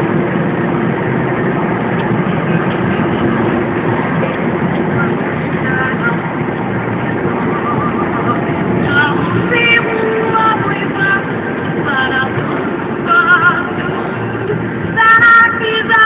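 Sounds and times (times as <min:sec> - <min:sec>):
car road noise: 0:00.0 - 0:16.0
music with singing: 0:02.1 - 0:16.0.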